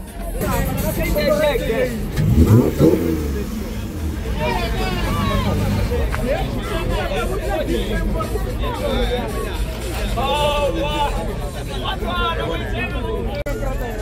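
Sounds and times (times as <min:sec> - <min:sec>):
crowd chatter: 0:00.0 - 0:14.0
car engine rumbling and revving: 0:00.4 - 0:06.8.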